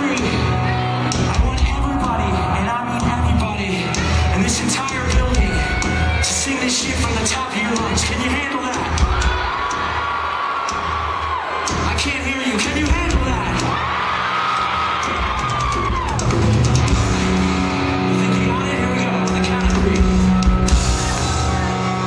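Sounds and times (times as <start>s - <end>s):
crowd yelling and whooping: 0.0s - 22.0s
sustained guitar chords: 16.4s - 22.0s.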